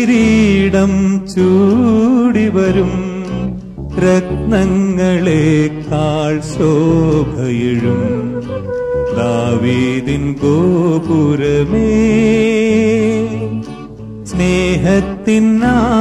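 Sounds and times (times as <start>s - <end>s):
devotional song: 0.0s - 16.0s.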